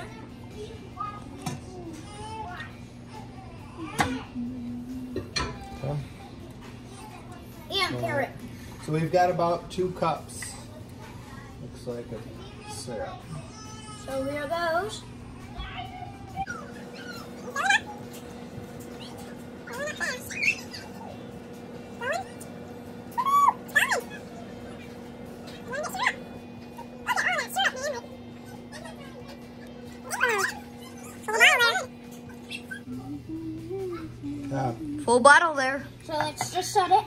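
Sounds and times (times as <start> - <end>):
low electrical hum: 0.0 - 37.0.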